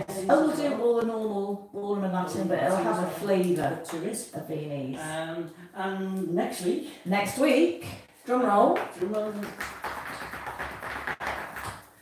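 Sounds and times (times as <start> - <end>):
shoes tapping on tiled floor: 8.5 - 12.0.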